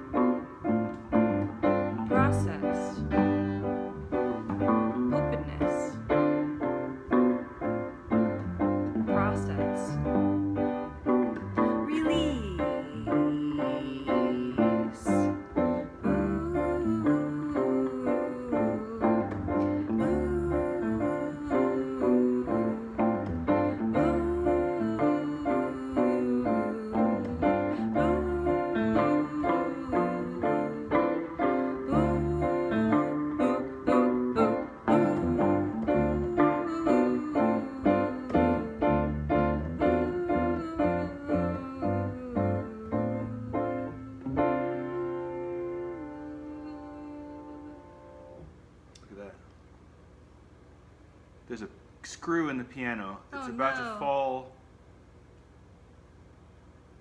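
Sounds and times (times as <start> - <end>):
piano and guitar song: 0.0 - 48.5.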